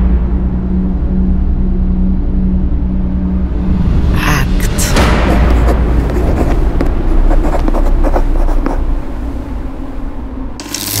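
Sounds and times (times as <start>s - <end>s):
deep low drone: 0.0s - 7.8s.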